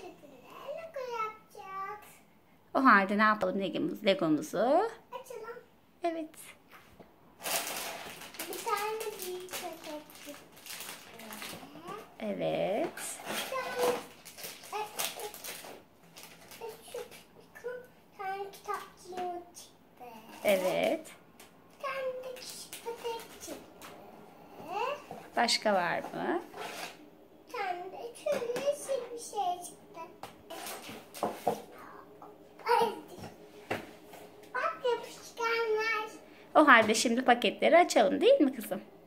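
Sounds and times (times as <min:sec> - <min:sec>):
cardboard and plastic bags rustling: 0:07.4 - 0:17.3, 0:20.3 - 0:24.1, 0:30.4 - 0:31.9.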